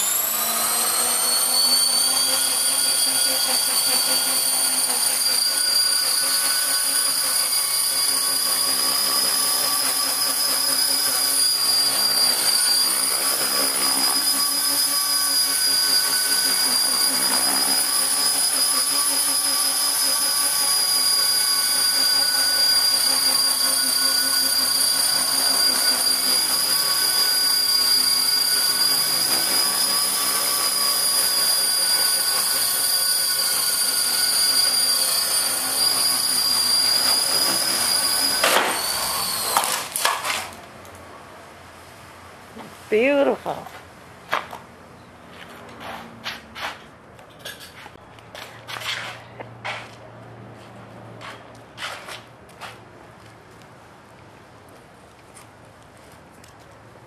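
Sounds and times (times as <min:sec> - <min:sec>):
rc helicopter whine: 0:00.0 - 0:40.6.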